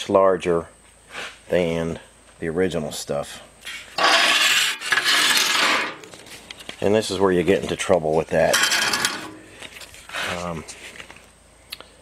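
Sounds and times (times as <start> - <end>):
sheet metal scraping: 4.0 - 6.1, 8.5 - 9.5.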